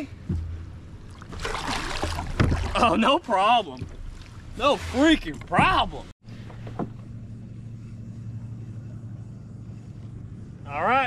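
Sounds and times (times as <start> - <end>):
low rumble of boat hull: 0.0 - 11.0
water splashing and dripping: 1.0 - 5.6.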